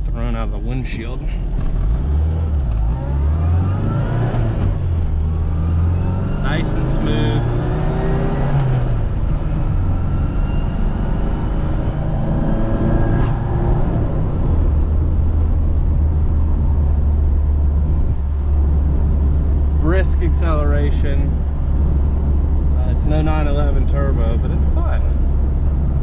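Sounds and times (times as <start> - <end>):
road noise: 0.0 - 26.0
car engine revving: 1.2 - 26.0.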